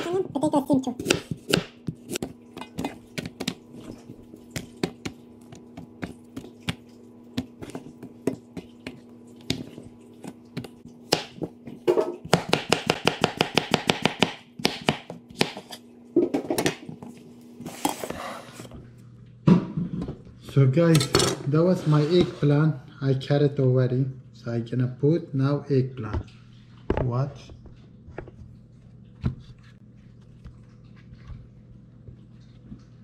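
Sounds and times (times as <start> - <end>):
knife chopping on wooden board: 1.0 - 3.6, 7.4 - 15.8.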